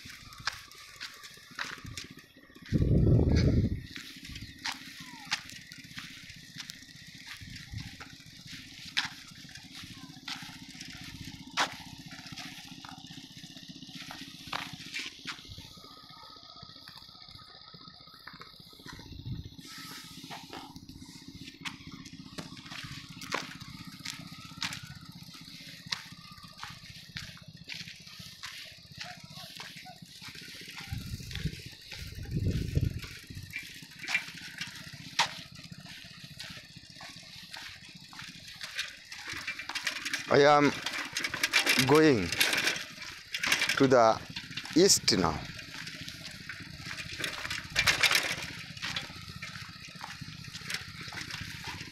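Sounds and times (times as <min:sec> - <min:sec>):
steady low hum: 0:00.0 - 0:13.4, 0:29.8 - 0:51.9
footsteps on dry ground and grass: 0:00.0 - 0:16.0, 0:18.6 - 0:51.9
wind buffeting microphone: 0:02.6 - 0:04.7, 0:30.8 - 0:33.6.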